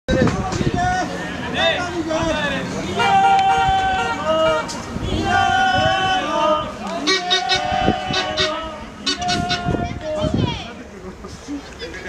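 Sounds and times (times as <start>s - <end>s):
spectators shouting: 0.8s - 10.1s.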